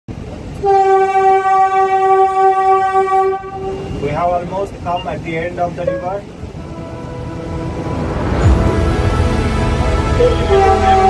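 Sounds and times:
train rumbling through tunnel: 0:00.1 - 0:11.0
train horn long blast: 0:00.6 - 0:04.1, 0:05.8 - 0:11.0.

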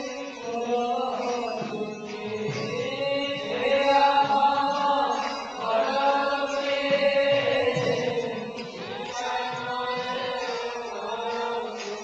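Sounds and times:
voices chanting devotional melody: 0:00.0 - 0:12.0.

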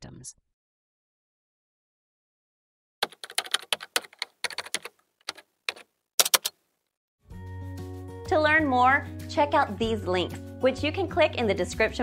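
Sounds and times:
computer keyboard typing: 0:03.0 - 0:06.6.

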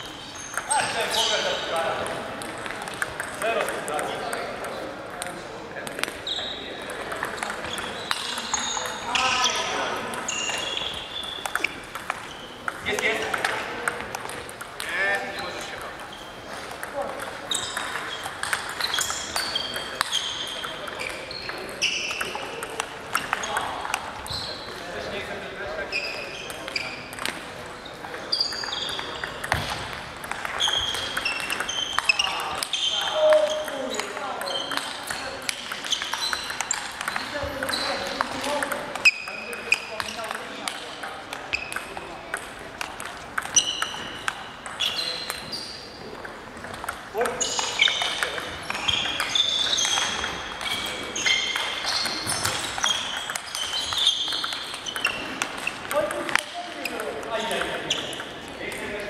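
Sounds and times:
table tennis ball clicking: 0:00.4 - 0:01.1, 0:02.0 - 0:06.2, 0:06.8 - 0:16.1, 0:16.7 - 0:24.8, 0:26.0 - 0:27.6, 0:28.4 - 0:45.6, 0:46.2 - 0:58.9
short high-pitched squeaks: 0:17.5 - 0:22.1, 0:48.8 - 0:55.7.

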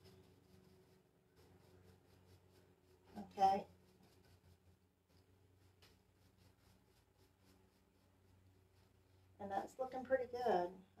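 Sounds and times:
paintbrush strokes on wood: 0:00.0 - 0:11.0.

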